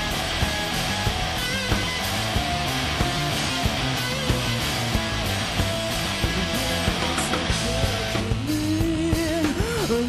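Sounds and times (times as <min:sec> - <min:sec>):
distorted bass riff: 0:00.0 - 0:10.0
drum kit: 0:00.0 - 0:10.0
man singing: 0:06.2 - 0:10.0.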